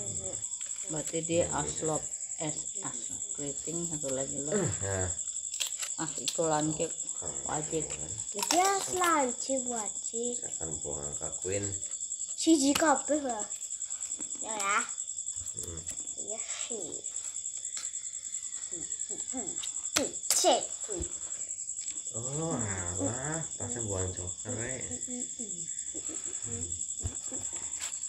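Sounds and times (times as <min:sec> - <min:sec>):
low voices: 0:00.0 - 0:00.4, 0:04.4 - 0:05.2, 0:07.2 - 0:09.2, 0:10.5 - 0:11.8, 0:15.5 - 0:15.9, 0:22.1 - 0:27.6
crickets chirping: 0:00.0 - 0:28.0.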